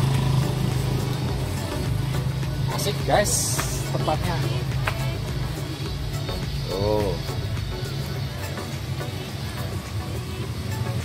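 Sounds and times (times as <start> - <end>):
engine humming: 0.0 - 11.0.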